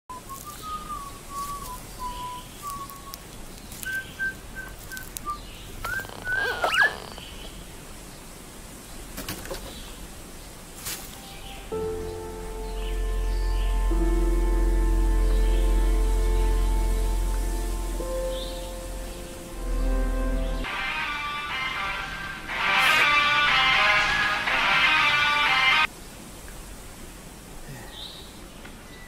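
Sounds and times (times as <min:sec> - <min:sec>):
bird whistled calls: 0:00.1 - 0:03.2, 0:03.8 - 0:07.5
faint outdoor ambience: 0:00.1 - 0:29.0
music chord with deep bass: 0:11.2 - 0:25.9.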